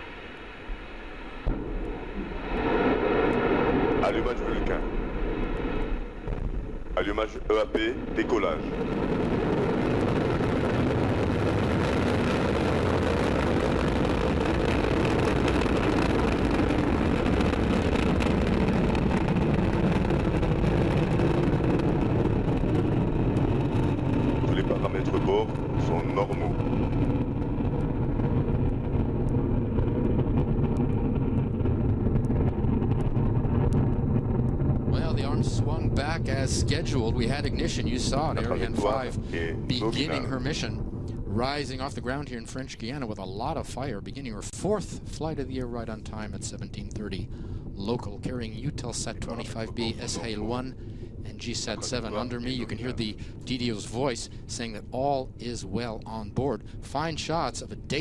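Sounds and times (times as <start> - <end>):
rocket engine rumble: 0.0 - 58.0.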